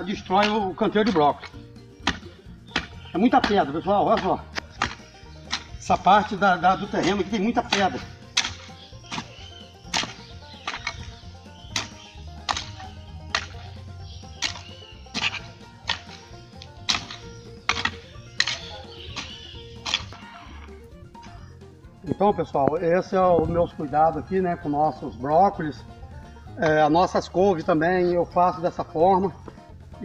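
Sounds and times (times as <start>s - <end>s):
hoe striking stony soil: 0.0s - 20.7s
soft background music: 0.0s - 30.0s.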